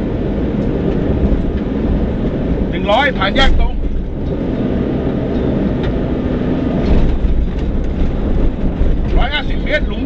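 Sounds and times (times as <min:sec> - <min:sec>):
car driving on gravel: 0:00.0 - 0:10.0.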